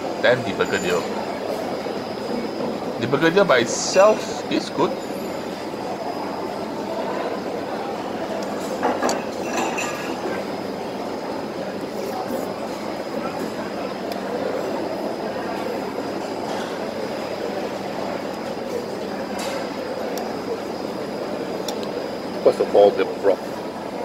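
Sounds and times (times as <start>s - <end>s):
distant chatter: 0.0s - 24.0s
ventilation noise: 0.0s - 24.0s.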